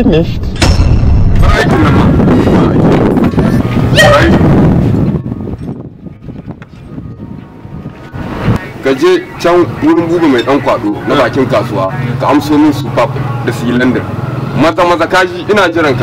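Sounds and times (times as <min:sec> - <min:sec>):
voices: 0:01.4 - 0:16.0.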